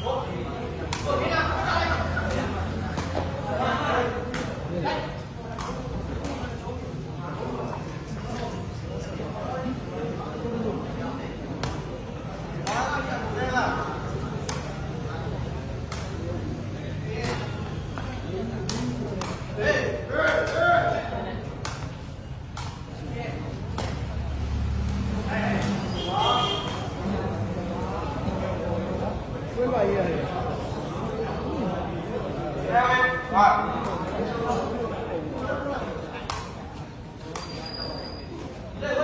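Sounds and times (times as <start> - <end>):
spectators talking and calling: 0.0 - 39.0.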